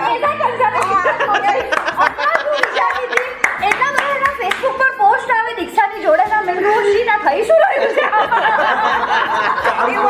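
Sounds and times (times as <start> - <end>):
group hand clapping: 0.8 - 1.0, 1.7 - 4.8.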